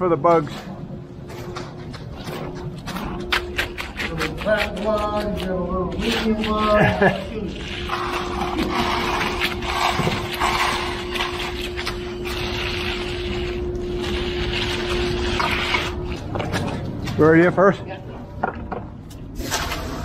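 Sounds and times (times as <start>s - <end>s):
steady hum: 0.0s - 20.0s
float scraping wet concrete: 2.2s - 16.8s.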